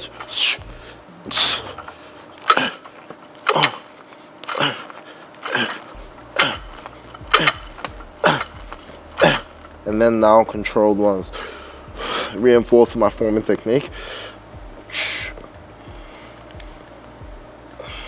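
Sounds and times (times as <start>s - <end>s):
metal plates clinking: 0.0s - 0.6s, 1.3s - 4.8s, 5.4s - 9.8s.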